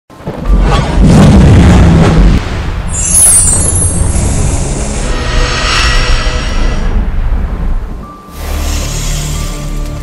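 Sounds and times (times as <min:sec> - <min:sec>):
intro music with deep boom: 0:00.4 - 0:10.0.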